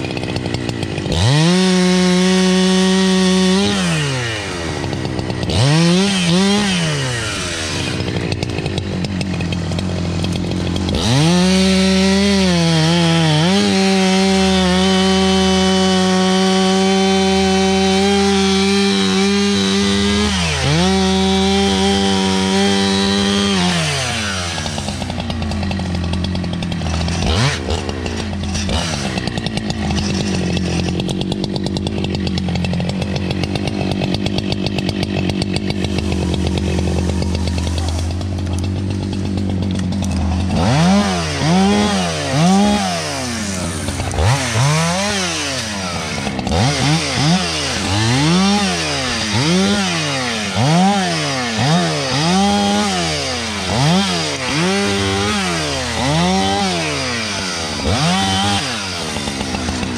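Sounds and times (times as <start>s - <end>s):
chainsaw cutting through log: 0.0s - 59.9s
chainsaw idling: 0.0s - 59.9s.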